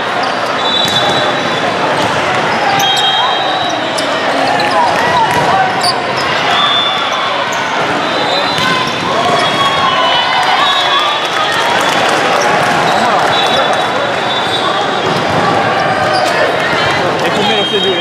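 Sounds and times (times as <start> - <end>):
players and spectators shouting: 0.0 - 18.0
shrill referee whistle: 0.6 - 1.6, 2.7 - 3.9, 5.8 - 7.4, 8.0 - 11.6, 12.9 - 14.8, 17.3 - 18.0
volleyballs struck and bouncing: 0.8 - 2.9, 4.6 - 5.8.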